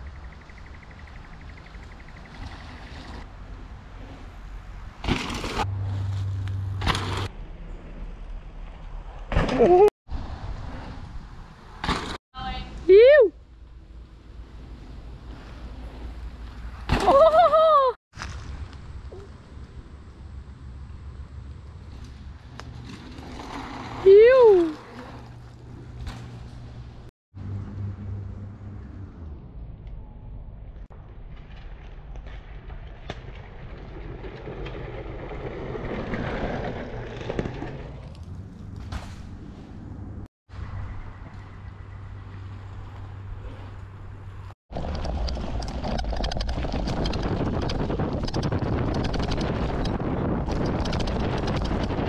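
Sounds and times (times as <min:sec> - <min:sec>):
bike tyres rolling on dirt: 0:00.0 - 0:09.4, 0:13.7 - 0:27.1, 0:30.9 - 0:52.0
bike rattling: 0:00.2 - 0:09.8, 0:14.1 - 0:27.1, 0:42.0 - 0:52.0
person laughing loudly: 0:17.0 - 0:18.0
wind rumble on microphone: 0:29.9 - 0:52.0.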